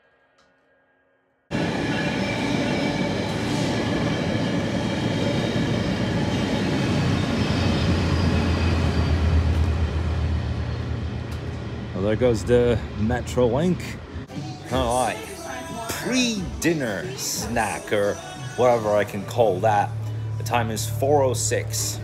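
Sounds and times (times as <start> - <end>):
train wheels rumbling on rails: 1.5 - 14.3.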